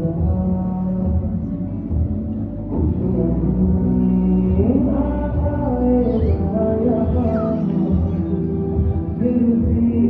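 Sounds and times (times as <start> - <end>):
deep bass: 0.0 - 10.0
music with held low notes: 0.0 - 10.0.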